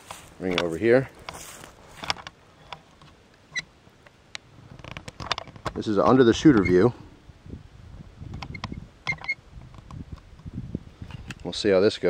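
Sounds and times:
camera handling rustling: 0.0 - 3.2
short high squeaks: 8.4 - 9.4.

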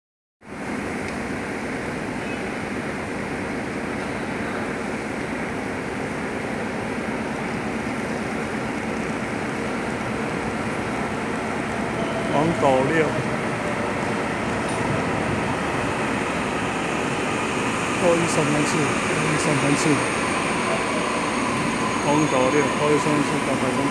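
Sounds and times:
train approaching in distance: 0.5 - 23.9.

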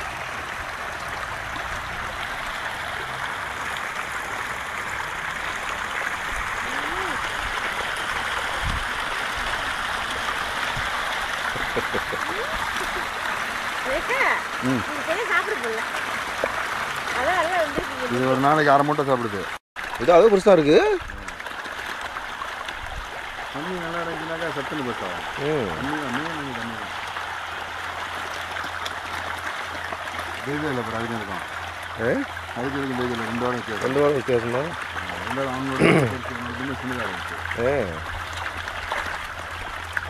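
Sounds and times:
churned water splashing: 0.0 - 40.0.

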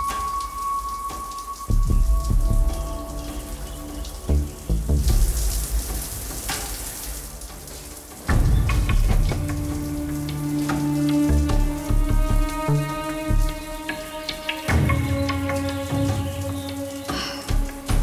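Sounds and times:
shower water running: 0.0 - 18.0
music with heavy low beats: 1.7 - 14.0.

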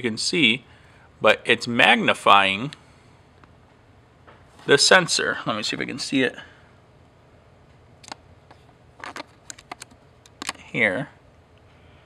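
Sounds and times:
loupe clicking against camera: 8.0 - 8.2, 9.1 - 10.6.

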